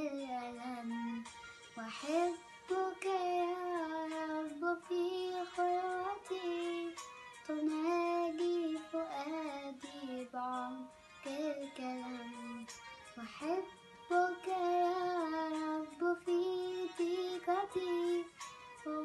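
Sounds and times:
girl singing a hymn: 0.0s - 19.0s.

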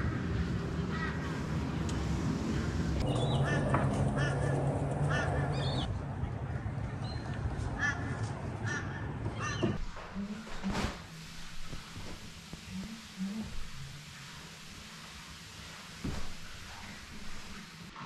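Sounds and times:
crow cawing: 0.9s - 1.3s, 3.4s - 5.7s.

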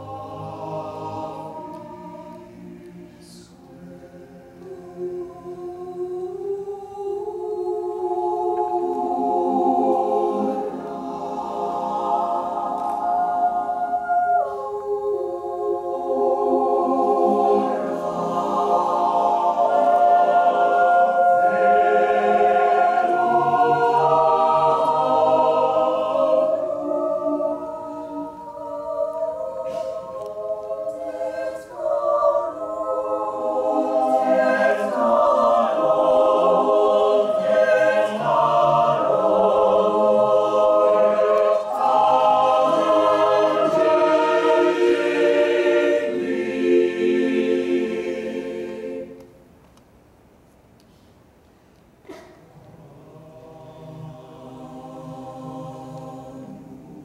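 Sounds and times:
mixed choir singing chords: 0.0s - 49.5s, 52.1s - 57.0s.

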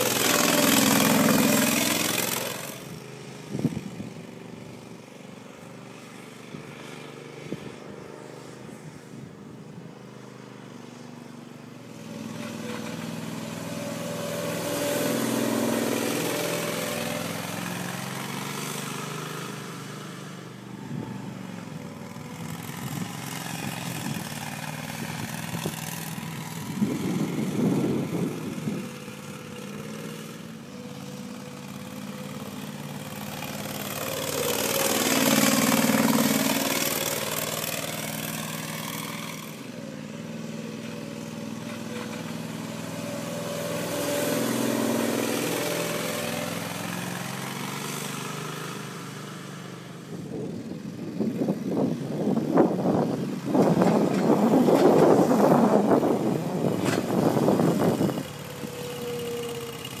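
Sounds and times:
loud irregular buffeting: 0.0s - 60.0s
sprayer engine running: 0.0s - 60.0s.

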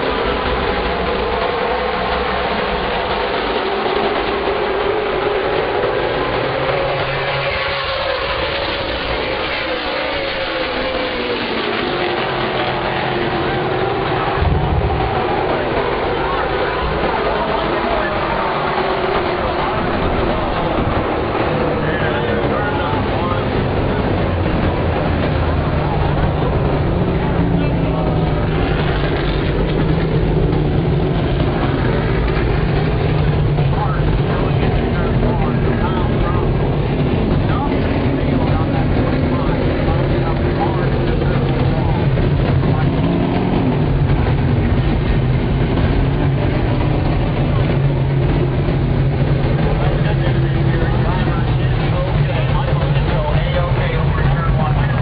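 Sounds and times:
stock car engines idling: 0.0s - 55.0s.

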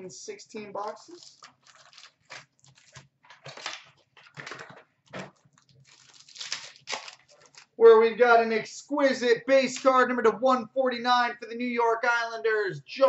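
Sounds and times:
person speaking: 0.0s - 1.5s, 7.8s - 13.0s
card packs tearing and crinkling: 1.1s - 7.8s.

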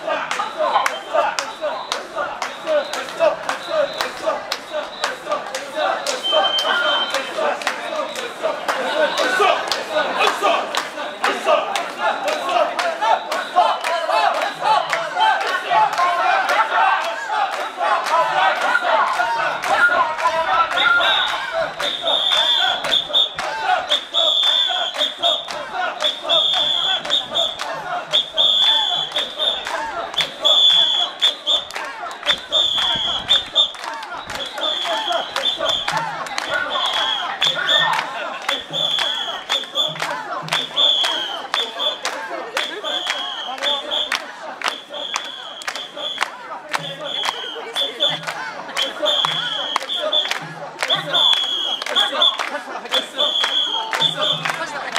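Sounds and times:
crowd chanting in unison: 0.0s - 54.9s
crowd noise: 0.0s - 54.9s
short high whistle blasts: 30.4s - 31.7s, 32.3s - 35.9s.

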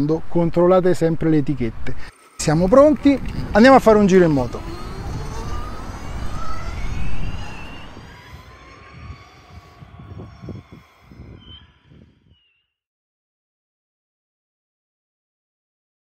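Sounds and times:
wind rumble on microphone: 1.7s - 12.4s
motorcycle riding away: 2.0s - 11.3s.

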